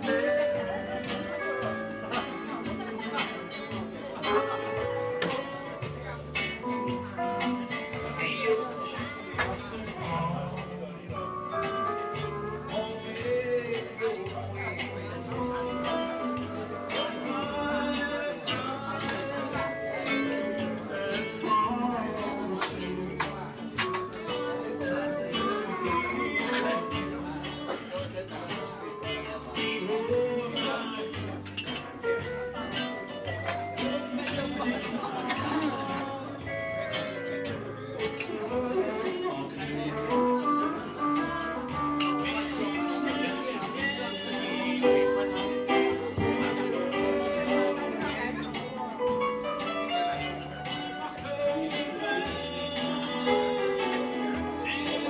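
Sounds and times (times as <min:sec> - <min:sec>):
latin acoustic guitar music: 0:11.2 - 0:55.0.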